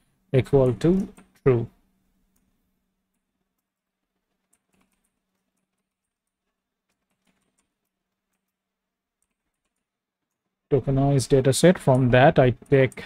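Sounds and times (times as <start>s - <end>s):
computer keyboard typing: 3.1s - 8.6s, 9.2s - 10.5s.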